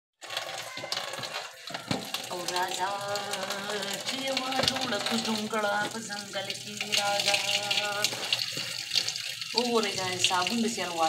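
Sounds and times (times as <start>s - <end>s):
clothes splashing and clinking: 0.2s - 11.0s
tap water running into basin: 0.2s - 11.0s.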